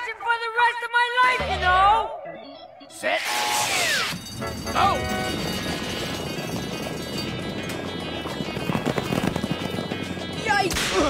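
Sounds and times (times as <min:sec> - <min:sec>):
galloping horse hooves: 0:04.2 - 0:10.9.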